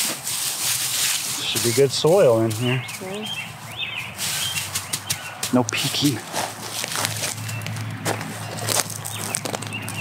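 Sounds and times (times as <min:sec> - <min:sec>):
small birds chirping: 0:01.4 - 0:10.0.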